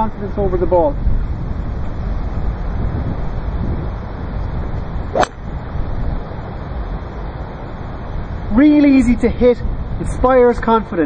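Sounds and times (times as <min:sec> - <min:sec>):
wind buffeting microphone: 0:00.0 - 0:11.0
golf club striking ball: 0:05.1 - 0:05.5.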